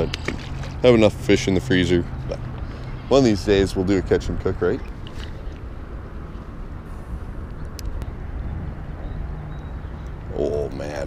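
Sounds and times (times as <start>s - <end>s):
wind rumbling on microphone: 2.5s - 11.0s.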